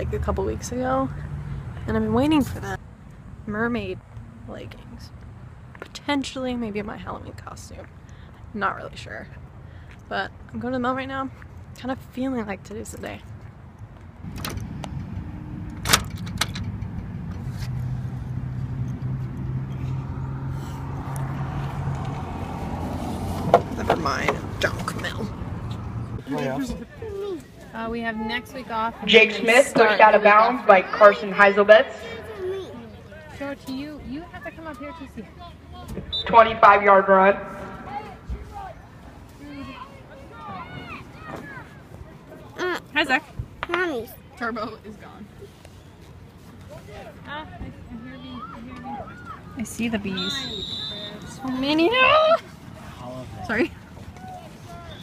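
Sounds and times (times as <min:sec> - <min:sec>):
spectators' voices: 0:23.4 - 0:55.0.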